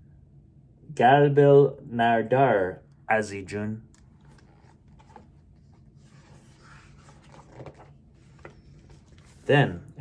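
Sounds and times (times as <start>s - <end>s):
book page turning: 3.9s - 9.5s
paper rustling: 4.0s - 9.5s.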